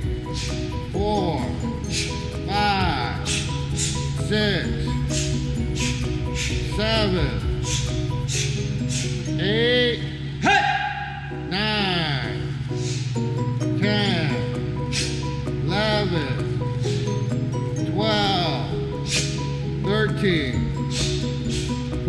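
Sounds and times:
background music with held tones: 0.0s - 22.0s
person shouting: 10.4s - 12.4s.

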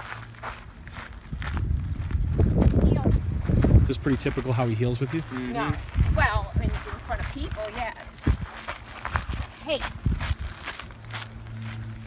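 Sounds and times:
footsteps of person and dog: 0.0s - 12.0s
woman saying hey: 9.6s - 9.9s.

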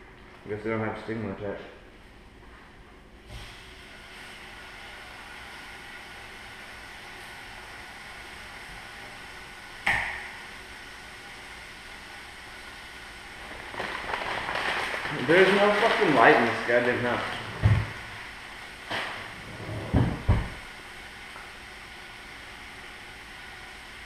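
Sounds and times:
range hood fan whirring: 0.0s - 24.0s.

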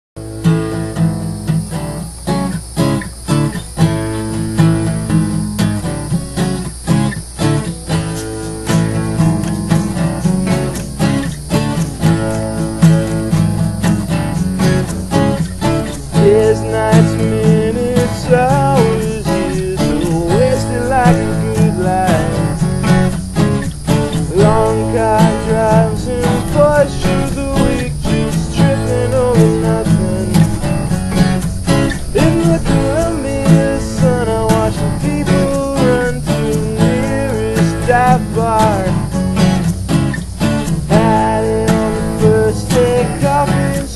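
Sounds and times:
acoustic bass guitar: 0.2s - 43.9s
acoustic guitars strumming: 0.2s - 43.9s.

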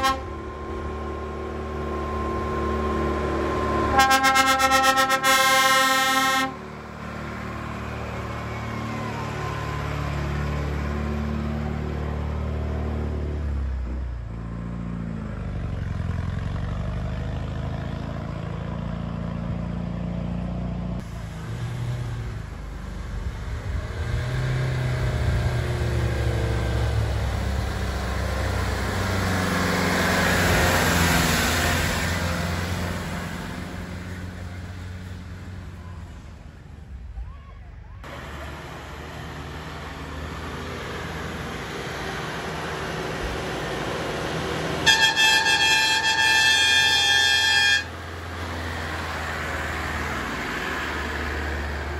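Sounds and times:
vehicle horn: 0.0s - 0.4s, 3.8s - 6.6s, 44.8s - 48.0s.

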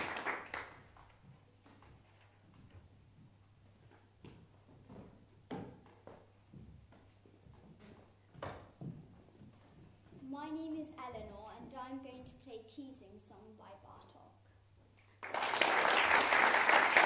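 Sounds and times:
shuffling footsteps: 1.0s - 12.0s.

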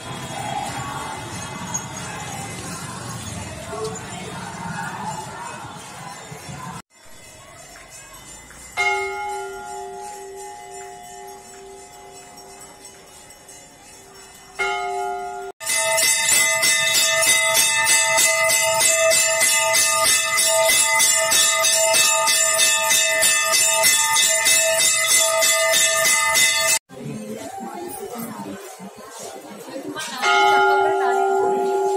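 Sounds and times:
bell rung rapidly: 0.0s - 26.9s
brass bell struck and ringing: 7.1s - 26.8s.

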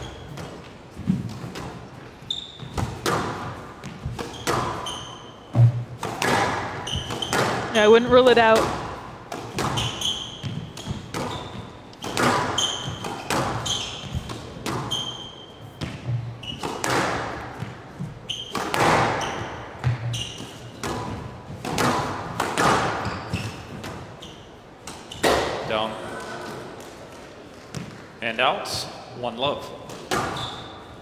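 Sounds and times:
shoes squeaking on court: 0.0s - 28.2s, 29.9s - 31.0s
squash ball strikes: 2.6s - 4.9s, 5.5s - 15.1s, 15.8s - 17.8s, 18.5s - 24.1s, 24.8s - 25.7s, 29.8s - 30.4s.

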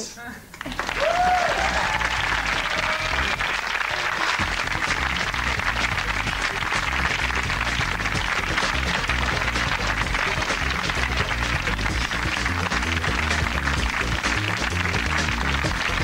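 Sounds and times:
audience applauding: 0.6s - 16.0s
theme music with pulsing bass: 1.2s - 16.0s.

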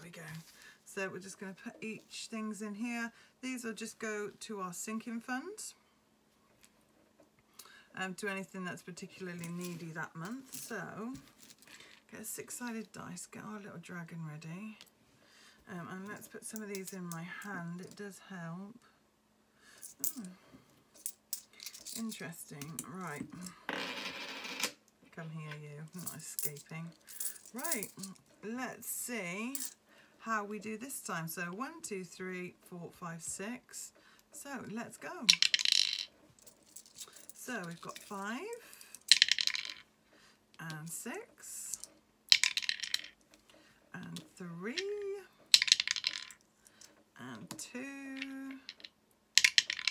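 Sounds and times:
coins set down on fabric mat: 9.3s - 12.0s, 19.8s - 24.8s, 25.9s - 28.2s, 29.5s - 29.8s, 35.3s - 38.2s, 38.8s - 39.8s, 42.3s - 43.2s, 45.5s - 47.0s, 48.2s - 49.9s
coins clicking together: 19.8s - 20.3s, 21.0s - 22.8s, 26.0s - 28.1s, 29.5s - 29.8s, 35.3s - 38.1s, 38.9s - 39.8s, 41.7s - 43.1s, 45.6s - 46.3s, 48.7s - 49.9s.

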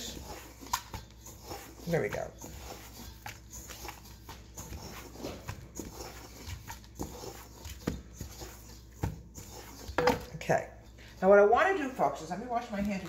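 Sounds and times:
hands squelching cookie dough: 0.0s - 13.0s.

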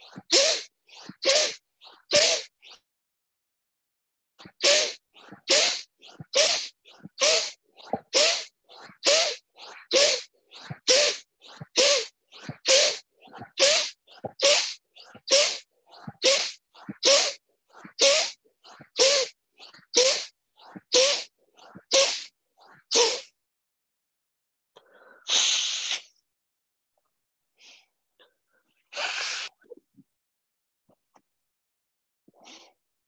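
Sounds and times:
soft inhalations: 0.0s - 2.5s, 4.4s - 22.3s, 24.8s - 26.1s, 28.6s - 29.7s, 32.4s - 32.8s
forceful nasal exhalations: 0.1s - 2.5s, 4.4s - 22.3s, 24.8s - 26.2s, 28.9s - 29.7s.

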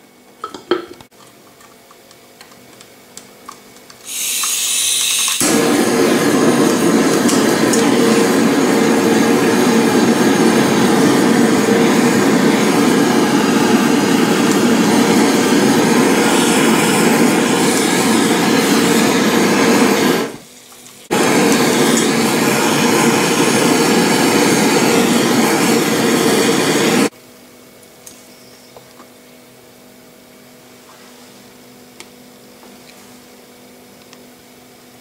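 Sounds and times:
blowtorch flame hissing: 4.0s - 27.1s.

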